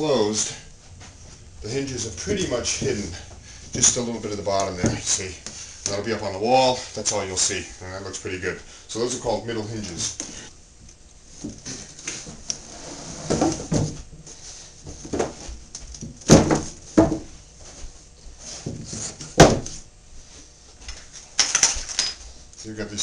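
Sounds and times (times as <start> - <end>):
wood knocking on a workbench: 16.0 - 17.3, 19.4 - 19.7.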